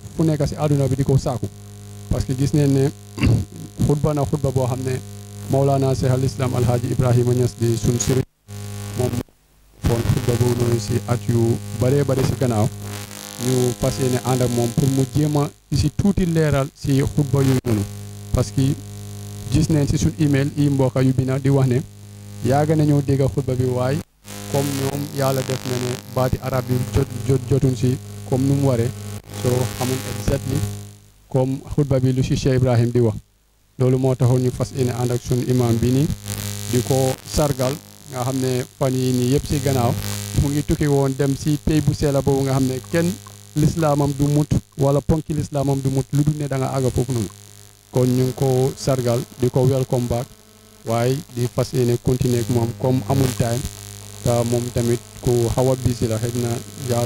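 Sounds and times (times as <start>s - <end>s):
low electrical hum: 0.0s - 57.0s
man speaking into a microphone: 0.1s - 1.5s, 2.1s - 8.3s, 9.0s - 9.2s, 9.8s - 12.8s, 13.4s - 18.8s, 19.5s - 30.7s, 31.3s - 33.2s, 33.8s - 47.3s, 47.9s - 57.0s.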